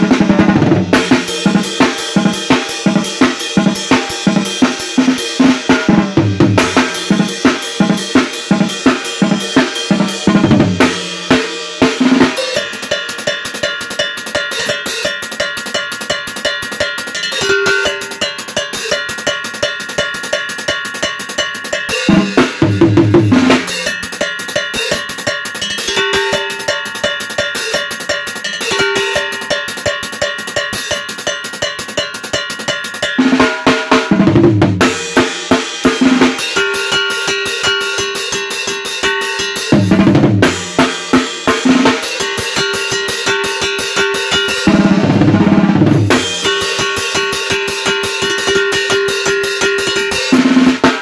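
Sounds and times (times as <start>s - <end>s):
drum kit beat: 0.0s - 51.0s.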